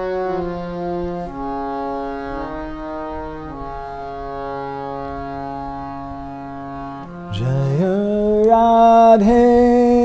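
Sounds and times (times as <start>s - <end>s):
harmonium playing a held chord: 0.0s - 10.0s.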